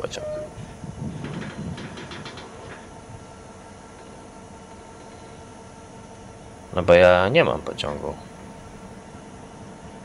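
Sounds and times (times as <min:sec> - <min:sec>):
train rumble: 0:00.0 - 0:10.0.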